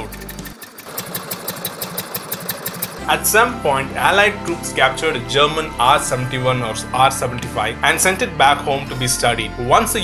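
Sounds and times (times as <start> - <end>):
music: 0.0 - 0.6, 3.0 - 10.0
motorcycle engine idling: 0.0 - 3.0.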